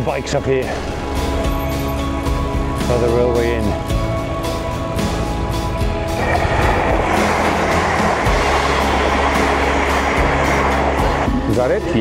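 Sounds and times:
background music: 0:00.0 - 0:12.0
electric train passing: 0:00.7 - 0:03.1, 0:03.7 - 0:12.0.

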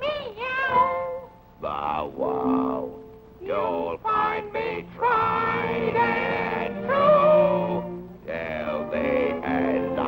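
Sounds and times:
cartoon characters singing: 0:00.0 - 0:10.0.

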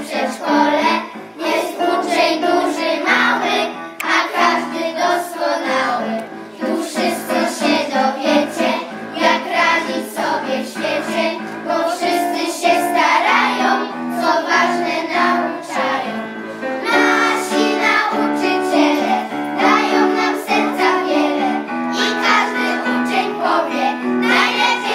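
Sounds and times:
children singing: 0:00.0 - 0:24.9
instrumental accompaniment: 0:00.0 - 0:24.9.

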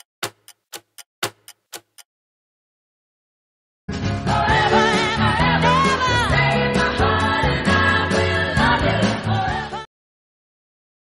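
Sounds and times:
clock ticking: 0:00.0 - 0:02.1.

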